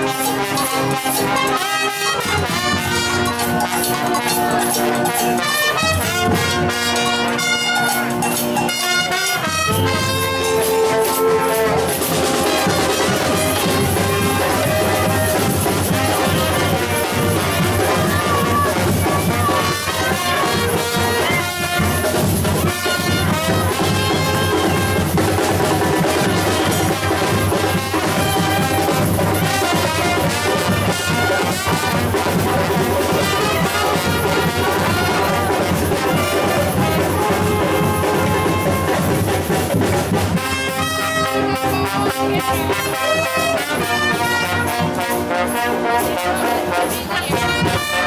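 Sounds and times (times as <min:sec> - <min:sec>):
street band playing dance music: 0:00.0 - 0:48.0.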